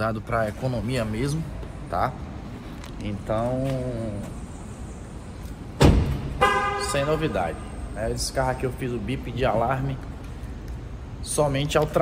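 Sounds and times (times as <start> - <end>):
car door shutting: 5.8 - 6.4
car horn chirp: 6.4 - 7.3.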